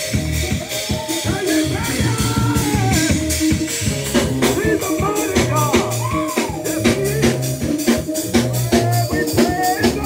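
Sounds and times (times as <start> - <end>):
drum kit steady beat: 0.0 - 10.0
keyboard: 0.0 - 10.0.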